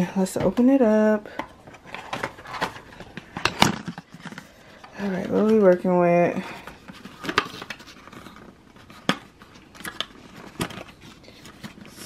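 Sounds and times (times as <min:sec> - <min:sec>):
cardboard and paper rustling: 0:00.2 - 0:12.0.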